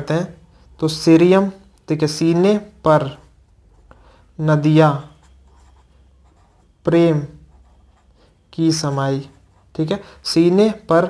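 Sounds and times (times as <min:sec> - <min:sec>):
marker pen scratching on paper: 0:04.9 - 0:10.1.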